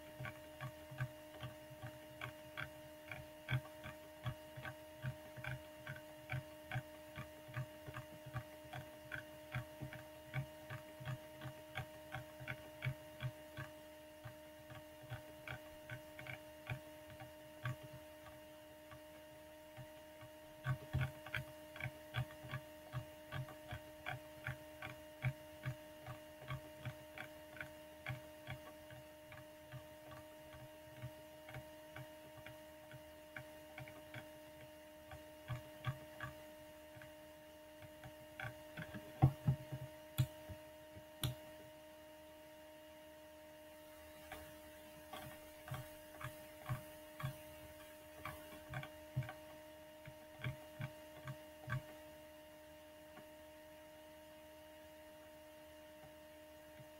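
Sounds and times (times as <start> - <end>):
steady electrical hum: 0.0 - 56.9
mouse scroll wheel clicking: 44.2 - 49.4.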